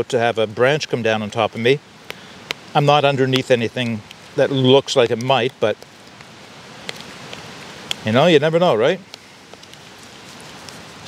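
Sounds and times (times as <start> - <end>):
strong wind through trees: 0.0 - 11.0.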